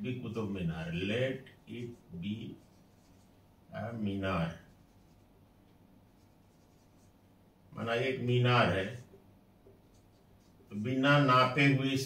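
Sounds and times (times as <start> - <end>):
man talking: 0.0 - 2.6, 3.7 - 4.7, 7.8 - 9.1, 10.7 - 12.0
marker writing on whiteboard: 1.5 - 3.4, 4.3 - 5.3, 6.1 - 7.2, 8.9 - 10.7.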